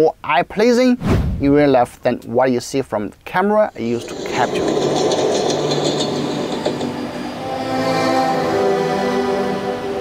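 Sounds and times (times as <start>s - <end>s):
passing train from laptop speakers: 3.7s - 9.0s.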